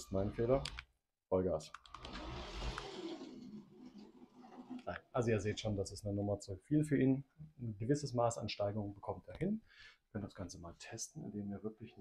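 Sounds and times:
toy train motor whirring: 2.0 - 4.8.

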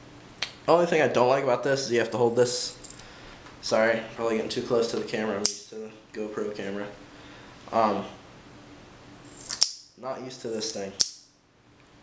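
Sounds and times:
sharp click of magazine: 9.5 - 9.9, 11.0 - 11.3.

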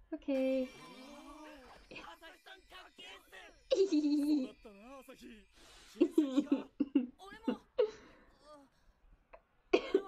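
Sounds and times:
woman speaking: 0.0 - 0.8
woman laughing: 3.7 - 4.5, 6.0 - 7.9
woman coughing: 9.7 - 10.0.

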